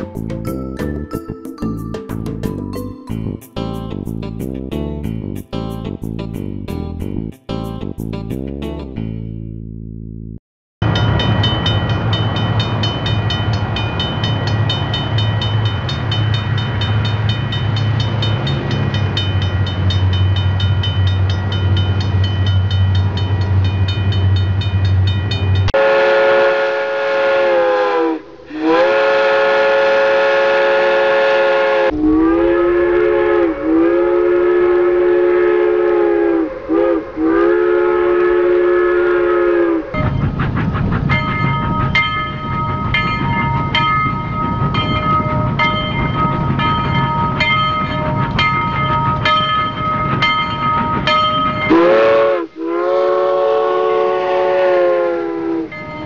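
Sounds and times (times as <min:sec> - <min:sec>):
train rumbling: 0:00.0 - 0:09.2, 0:10.8 - 0:56.0
locomotive whistle blasts: 0:25.7 - 0:40.1, 0:51.7 - 0:56.0.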